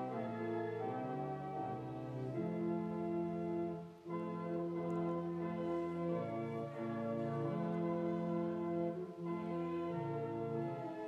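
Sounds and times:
church organ playing a hymn: 0.0 - 11.0.

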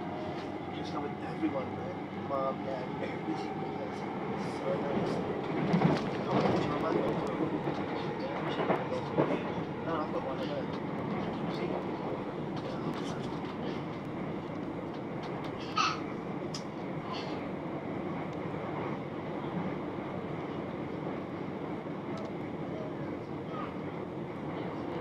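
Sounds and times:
passing train: 0.0 - 25.0
train wheels rumbling on rails: 0.0 - 25.0.

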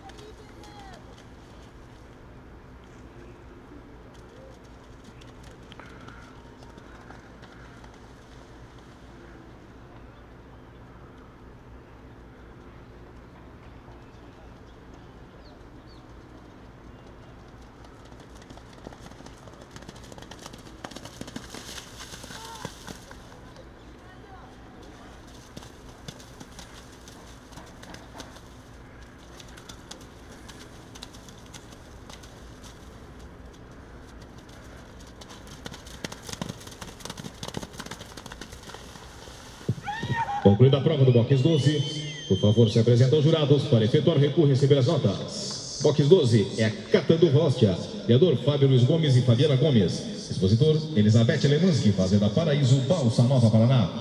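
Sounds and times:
horse hooves in wet mud: 0.0 - 2.3, 4.0 - 9.1, 15.7 - 40.5
distant voices: 0.0 - 54.0
steady low hum: 0.0 - 54.0.

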